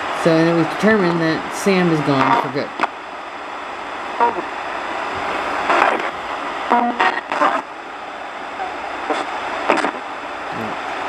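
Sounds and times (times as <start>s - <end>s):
radio static hiss: 0.0s - 11.0s
chopped broadcast voices: 0.2s - 3.0s, 4.0s - 7.8s, 8.5s - 11.0s.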